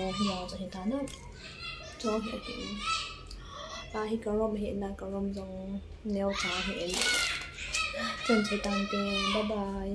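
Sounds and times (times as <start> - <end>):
woman talking: 0.0 - 1.2, 2.0 - 2.8, 3.9 - 7.3, 7.9 - 9.9.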